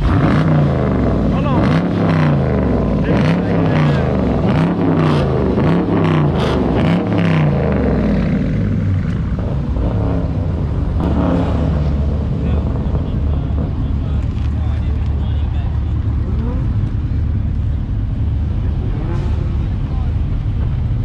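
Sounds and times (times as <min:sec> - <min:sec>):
car engine revving and idling: 0:00.0 - 0:21.0.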